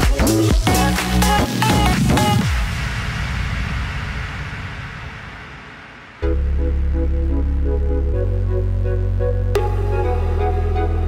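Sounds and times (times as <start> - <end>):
hissing noise sweep: 1.6 - 7.2
low rumble: 2.4 - 9.5.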